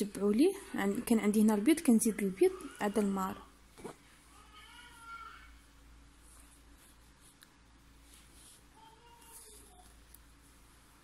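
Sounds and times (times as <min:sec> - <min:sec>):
needle and thread through cloth: 0:06.1 - 0:11.0.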